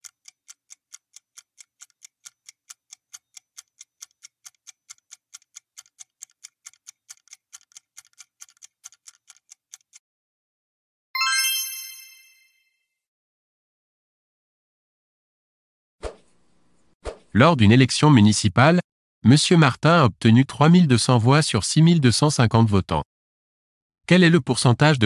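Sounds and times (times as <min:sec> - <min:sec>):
rapid clock-like ticking: 0:00.0 - 0:10.0
bright chime: 0:11.2 - 0:12.8.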